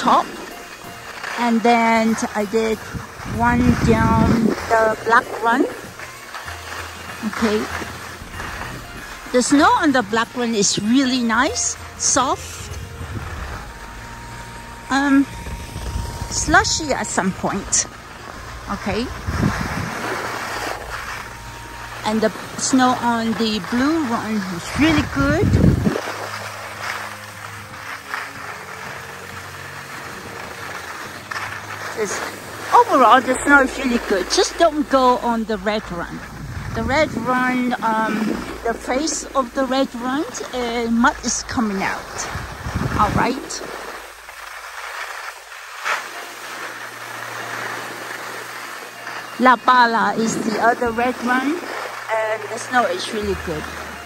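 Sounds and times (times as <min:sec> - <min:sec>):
skis sliding over slushy snow: 0:00.0 - 0:54.0
wind on microphone: 0:02.2 - 0:06.0, 0:07.3 - 0:26.5, 0:32.4 - 0:44.3.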